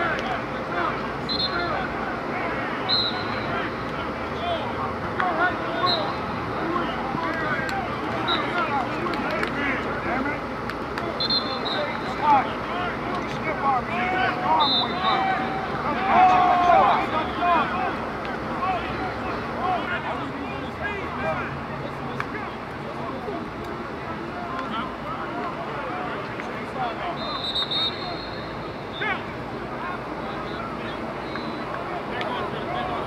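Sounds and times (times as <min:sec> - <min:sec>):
overlapping voices chattering: 0:00.0 - 0:33.0.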